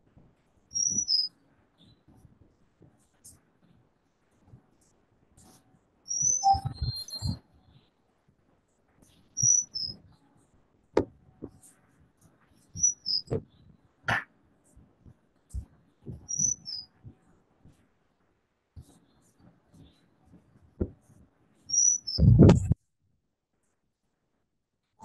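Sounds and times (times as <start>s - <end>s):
small bird chirping: 0.7s - 2.0s, 6.1s - 7.8s, 9.3s - 10.0s, 12.7s - 13.4s, 15.5s - 16.9s, 21.7s - 22.5s.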